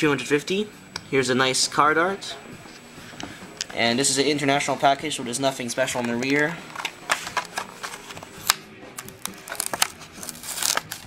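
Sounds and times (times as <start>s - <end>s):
plastic blister crackling: 5.9s - 11.0s
cardboard tearing: 7.2s - 11.0s.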